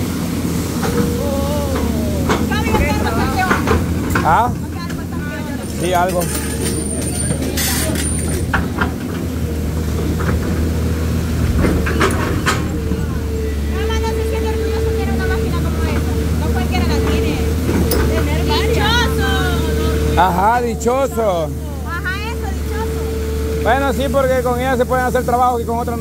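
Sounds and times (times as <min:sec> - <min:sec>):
excavator engine whine: 0:00.0 - 0:25.2.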